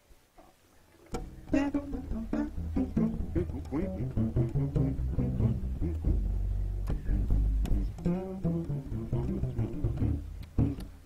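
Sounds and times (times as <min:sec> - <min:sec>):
plucked lute notes: 0:01.0 - 0:11.0
plucked double bass: 0:01.1 - 0:11.0.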